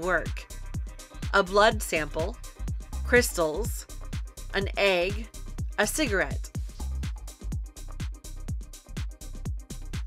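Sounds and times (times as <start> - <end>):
electronic music: 0.0 - 10.0.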